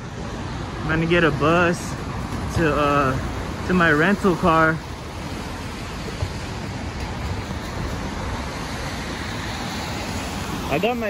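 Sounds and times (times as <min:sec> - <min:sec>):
traffic rushing hum: 0:00.0 - 0:11.0.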